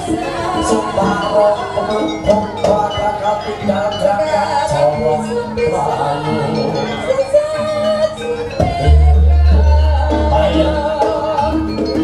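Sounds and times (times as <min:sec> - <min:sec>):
gamelan ensemble playing: 0:00.0 - 0:12.0.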